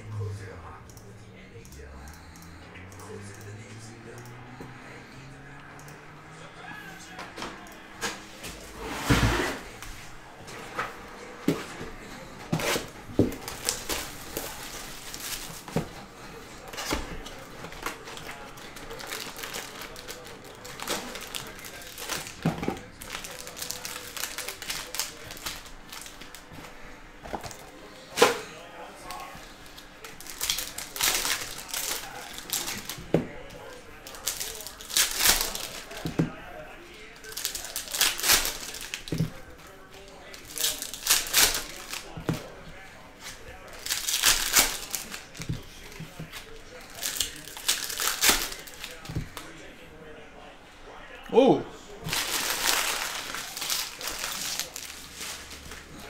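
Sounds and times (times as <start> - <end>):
cards and foil wrappers handled: 9.6 - 49.6, 52.0 - 56.0.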